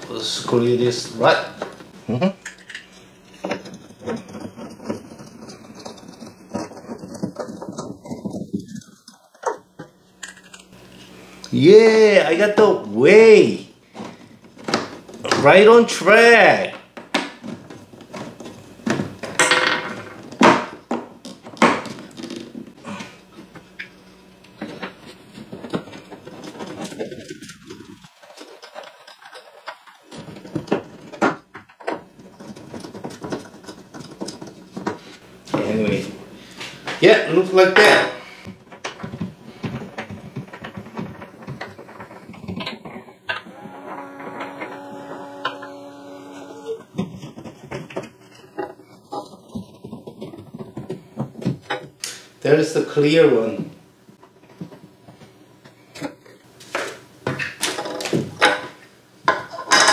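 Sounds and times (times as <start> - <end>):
plastic parts clicking and knocking: 1.6 - 10.7, 24.6 - 35.0, 38.5 - 45.7.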